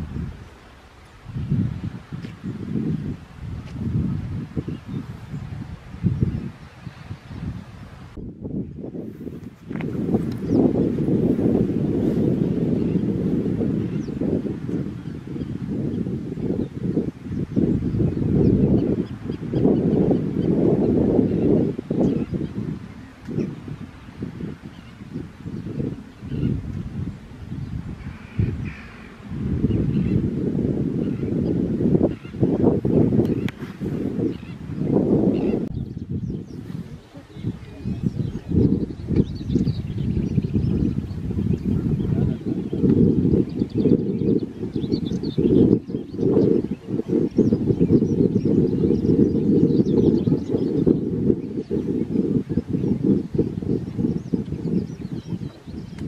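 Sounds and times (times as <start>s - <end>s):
wind buffeting microphone: 0.0s - 56.0s
faint bird calls: 28.0s - 30.2s.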